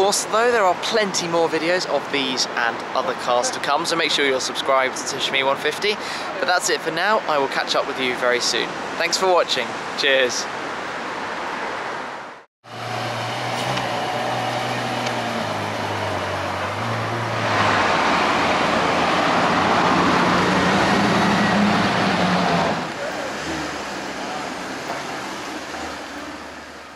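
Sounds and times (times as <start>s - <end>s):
street traffic: 0.0s - 26.9s.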